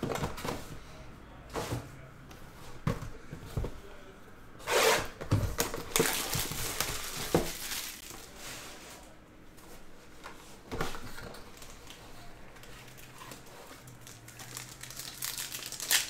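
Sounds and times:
cardboard rustling slide: 4.6s - 5.1s, 8.2s - 9.1s.

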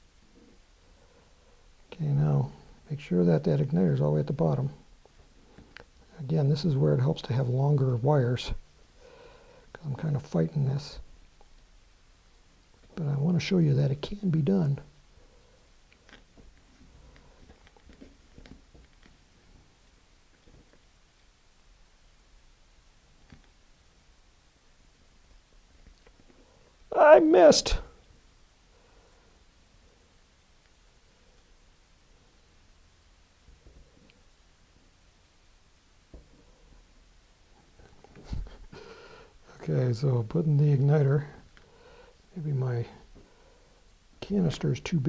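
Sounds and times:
low steady hum: 0.0s - 45.0s
small handling clicks and rubs: 15.9s - 19.7s.

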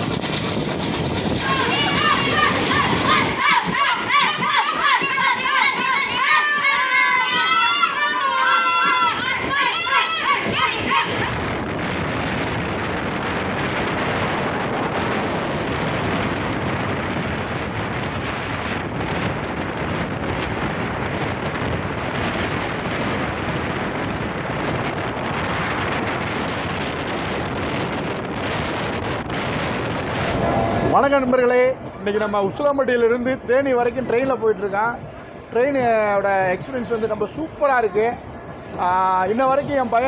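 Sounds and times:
passenger train rushing on rails: 0.0s - 40.0s
wind on microphone: 0.0s - 40.0s
children shouting: 1.4s - 11.5s.

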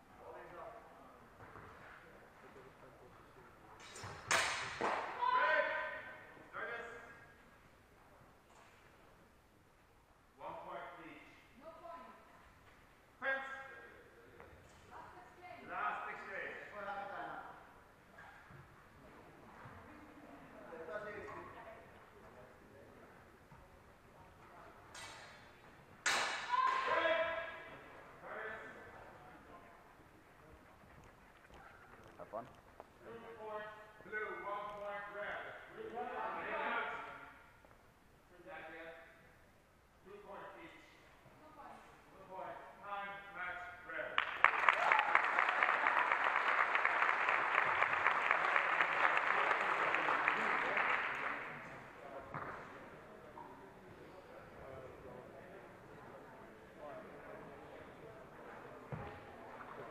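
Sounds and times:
audience applause: 44.2s - 51.6s
faint murmur of voices: 50.1s - 59.9s.

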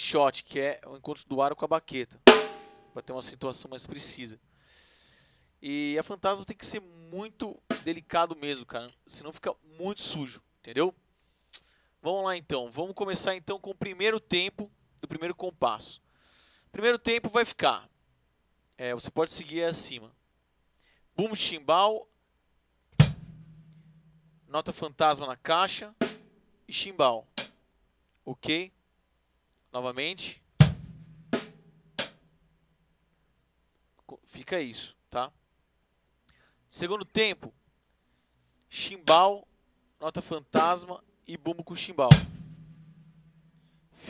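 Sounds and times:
bass drum and hi-hat stroke: 2.3s - 2.9s, 23.0s - 24.5s, 30.6s - 32.2s, 42.1s - 43.6s.

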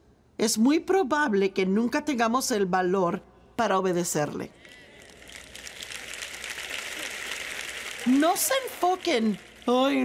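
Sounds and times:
audience applauding: 4.8s - 10.0s.

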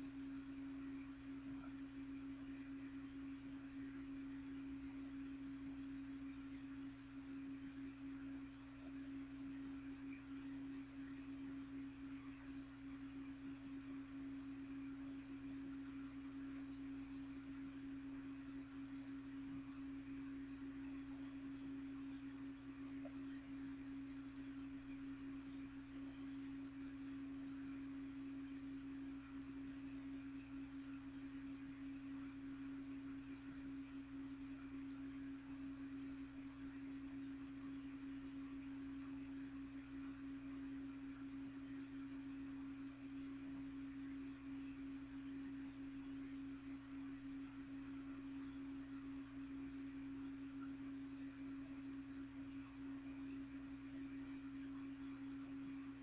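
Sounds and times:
box fan humming: 0.0s - 56.0s.

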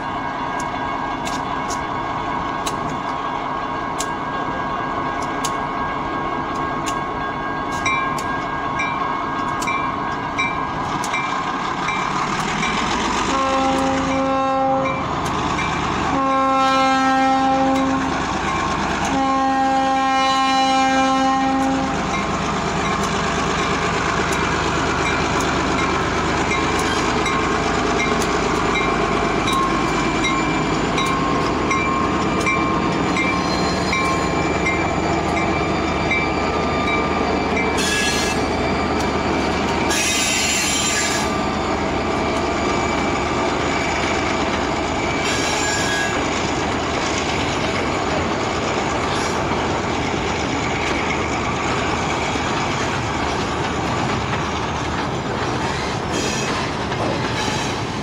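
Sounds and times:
freight train rumbling past: 0.0s - 58.0s
wheels clicking over rail joints: 7.7s - 14.2s, 21.6s - 41.3s, 43.8s - 58.0s
locomotive air horn blasts: 13.3s - 15.0s, 16.1s - 18.1s, 19.0s - 22.0s, 37.8s - 38.5s, 39.9s - 41.4s.

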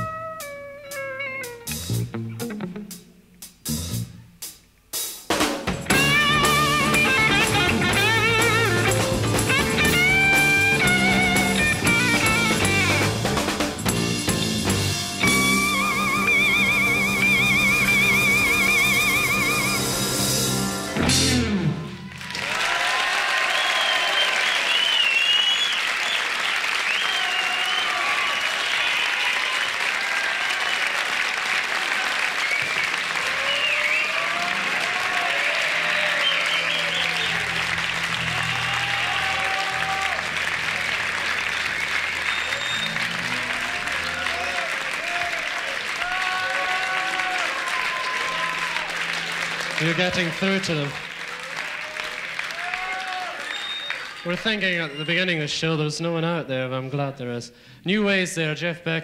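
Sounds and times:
guitar and bass tuning notes: 0.0s - 4.4s, 5.8s - 22.1s, 37.1s - 44.6s, 48.5s - 51.0s
rock band chord: 5.3s - 22.1s, 48.2s - 51.2s
audience applause and cheering: 5.8s - 55.4s
audience whistling: 15.2s - 21.0s, 21.8s - 55.5s.

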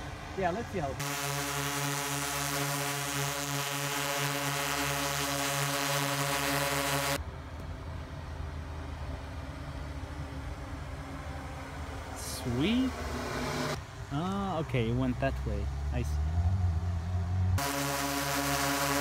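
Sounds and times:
drone propellers humming: 1.0s - 7.2s, 11.7s - 13.8s, 17.6s - 19.0s.

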